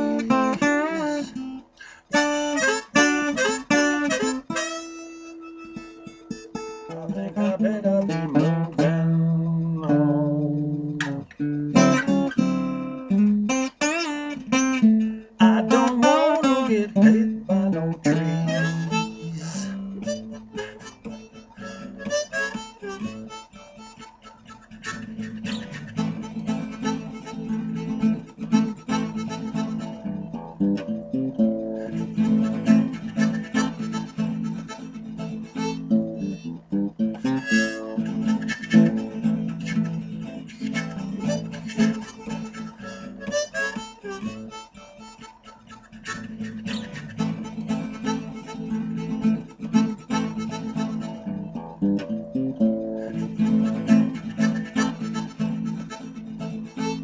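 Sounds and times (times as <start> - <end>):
acoustic guitar: 0.0 - 57.0
blues harmonica: 0.0 - 57.0.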